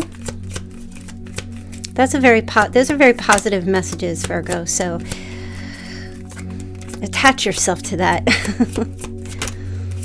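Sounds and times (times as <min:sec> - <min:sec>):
cards shuffling and clicking: 0:00.0 - 0:10.0
soft background music drone: 0:00.0 - 0:10.0.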